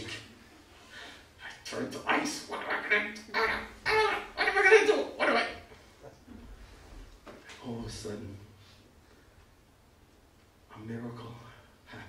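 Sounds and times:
faint low room hum: 0.0 - 12.0.

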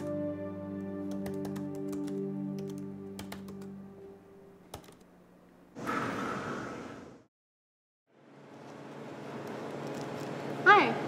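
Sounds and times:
background music: 0.0 - 4.8
laptop keyboard typing: 1.1 - 3.7, 4.7 - 5.0.

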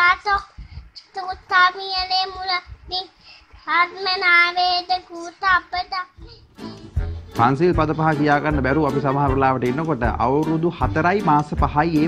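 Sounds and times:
boy chanting in sing-song voice: 0.0 - 6.5.

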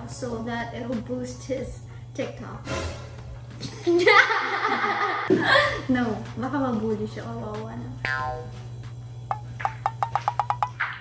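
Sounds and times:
woman speaking: 0.0 - 2.7, 5.8 - 8.5
woman laughing: 3.6 - 5.9.

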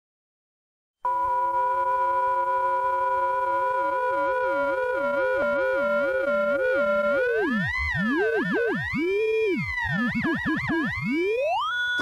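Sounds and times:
steady test tone: 1.1 - 11.3
warbling electronic tones: 1.1 - 12.0.

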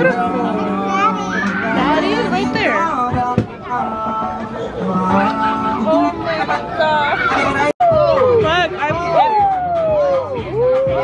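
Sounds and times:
background music: 0.0 - 11.0
young children calling and chattering: 0.0 - 11.0.

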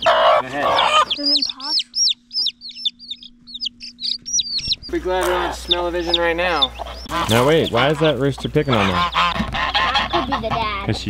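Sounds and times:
baby chick peeping: 0.0 - 11.0.

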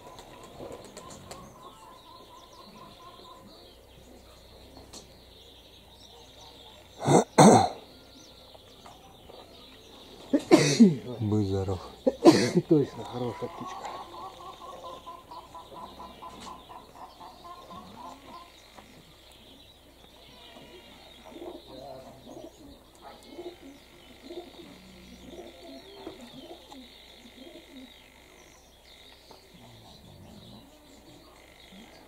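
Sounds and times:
birds chirping: 0.0 - 32.0
pigeons cooing: 0.0 - 32.0.

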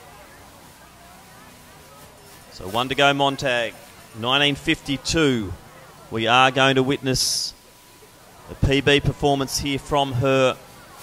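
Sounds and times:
faint distant voices: 0.0 - 11.0
low outdoor background noise: 0.0 - 11.0.

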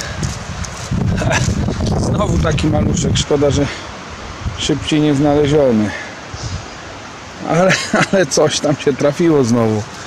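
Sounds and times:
dry leaves rustling and scraping: 0.0 - 2.1.

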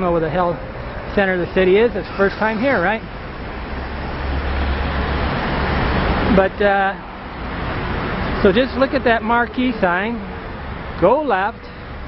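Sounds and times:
road traffic: 0.0 - 12.0
van approaching: 0.0 - 12.0.

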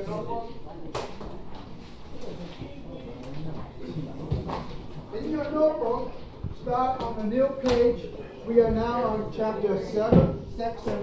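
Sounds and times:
students chattering: 0.0 - 11.0.

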